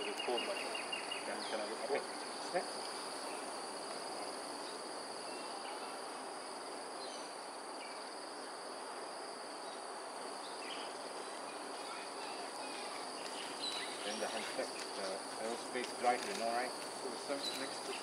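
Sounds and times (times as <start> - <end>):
background hiss: 0.0 - 18.0
insects droning: 0.0 - 18.0.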